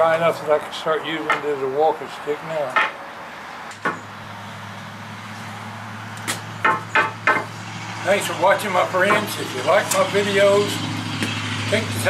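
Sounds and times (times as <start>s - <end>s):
short knocks: 6.3s - 7.5s.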